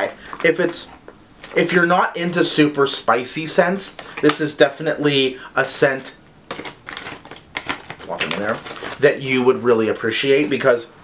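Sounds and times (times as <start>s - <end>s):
bag rustling: 6.5s - 10.1s.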